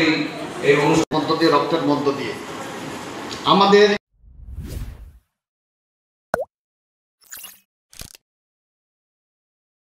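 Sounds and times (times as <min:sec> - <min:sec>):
sharp swish with pitch sweep: 0:04.2 - 0:05.2
whoosh: 0:04.2 - 0:05.2.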